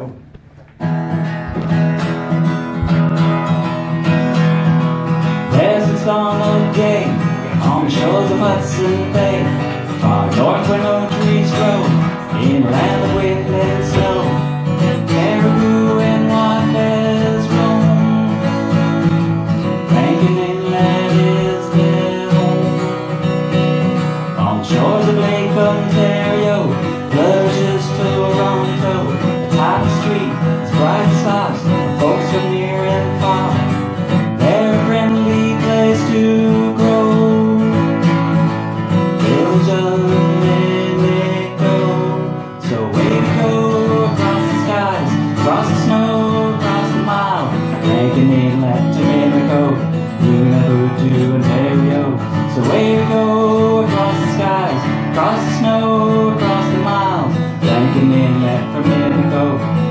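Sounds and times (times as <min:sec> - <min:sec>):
acoustic guitar strumming: 0:00.0 - 0:59.9.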